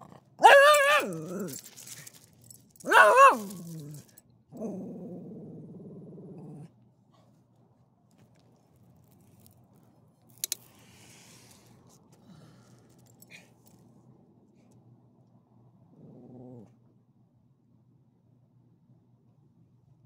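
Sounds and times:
dog growling: 0:00.0 - 0:01.7, 0:02.9 - 0:06.8, 0:15.9 - 0:16.8
dog crying: 0:00.4 - 0:01.6, 0:02.9 - 0:03.6.

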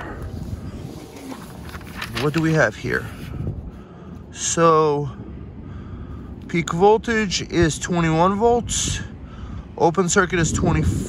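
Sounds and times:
paper booklet rustling: 0:00.0 - 0:03.3
microphone handling noise: 0:00.0 - 0:04.3
wind rumble: 0:00.0 - 0:11.0.

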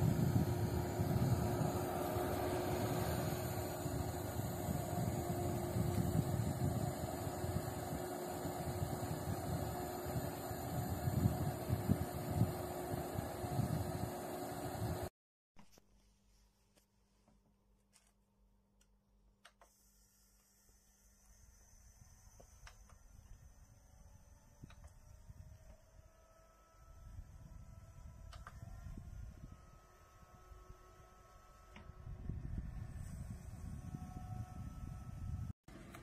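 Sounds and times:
small fan running: 0:00.0 - 0:15.1, 0:19.5 - 0:36.0.

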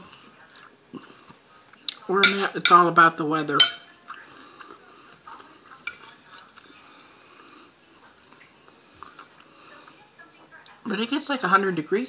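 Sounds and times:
person chewing food: 0:08.2 - 0:09.5.

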